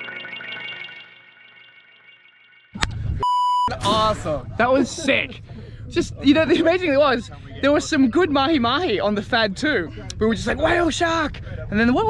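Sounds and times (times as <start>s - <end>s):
censor bleep: 3.2s - 3.8s
man talking excitedly: 3.8s - 12.0s.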